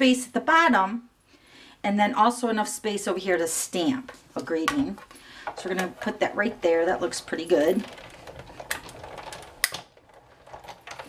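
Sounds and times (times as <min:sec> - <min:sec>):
hand-cranked machine rolling: 0:05.5 - 0:11.0.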